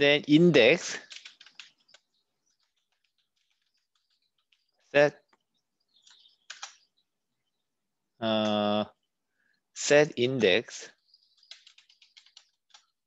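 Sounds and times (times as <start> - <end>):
computer keyboard typing: 0.2 - 4.8, 5.9 - 6.9, 11.2 - 13.0.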